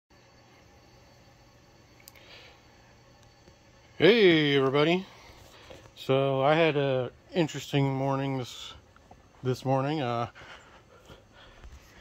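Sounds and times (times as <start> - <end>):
faint low hum: 0.1 - 12.0
faint clicks: 2.0 - 2.2.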